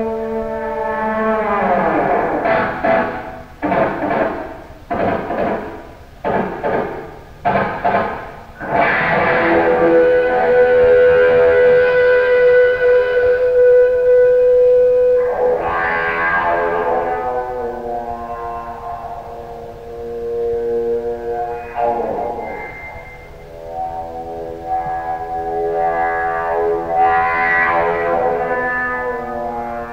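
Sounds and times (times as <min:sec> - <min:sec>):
bowed distorted electric guitar: 0:00.0 - 0:29.9.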